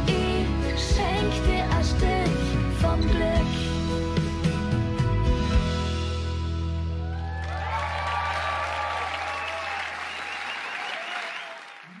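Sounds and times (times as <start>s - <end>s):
audience applauding: 7.0s - 12.0s.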